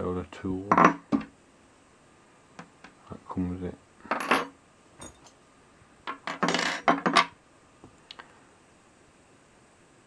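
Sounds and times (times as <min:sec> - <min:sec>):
metal tools clattering on wood: 0:04.0 - 0:05.4, 0:06.1 - 0:07.3.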